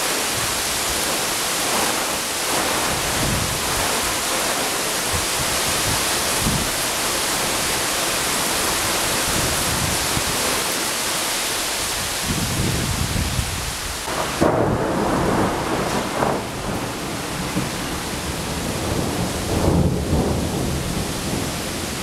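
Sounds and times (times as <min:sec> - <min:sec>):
heavy steady rain: 0:00.0 - 0:22.0
thunder rumbling: 0:14.0 - 0:22.0.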